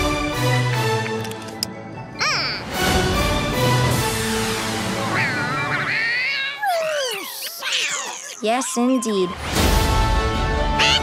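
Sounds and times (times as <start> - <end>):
squeaky cartoon bird chatter: 5.1 - 8.8.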